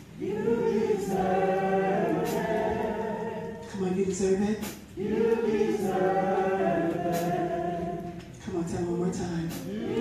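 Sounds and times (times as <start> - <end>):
people singing along: 0.0 - 4.0, 4.6 - 8.5, 9.5 - 10.0.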